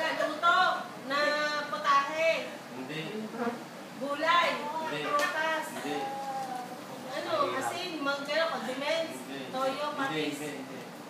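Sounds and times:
indistinct human voices: 0:04.6 - 0:07.2.

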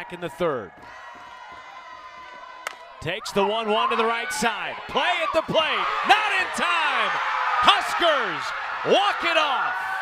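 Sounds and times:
bat hitting ball crack: 0:02.6 - 0:02.9.

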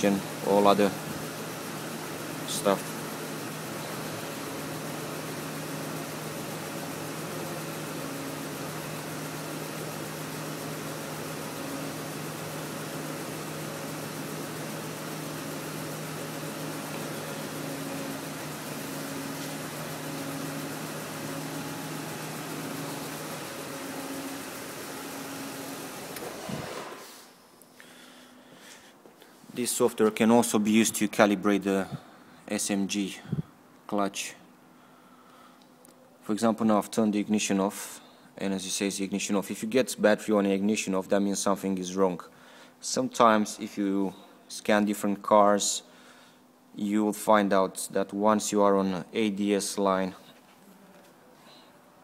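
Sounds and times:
car engine idling: 0:00.0 - 0:27.0.

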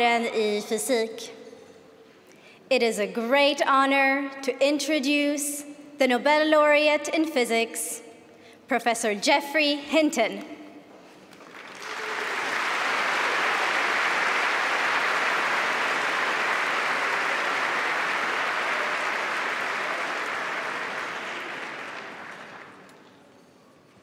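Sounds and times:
audience applauding: 0:11.4 - 0:23.2.

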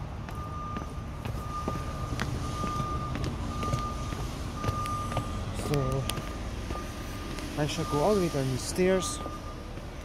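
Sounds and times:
footsteps on stone steps: 0:00.0 - 0:08.2, 0:09.0 - 0:10.0
electronic beeps: 0:00.4 - 0:09.7.

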